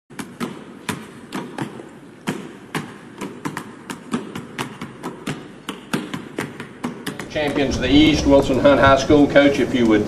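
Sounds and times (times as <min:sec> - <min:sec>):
basketball dribbling on hard court: 0:00.1 - 0:07.7.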